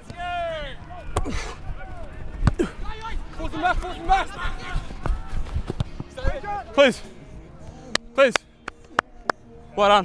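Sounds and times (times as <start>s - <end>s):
players shouting: 0.0s - 7.0s.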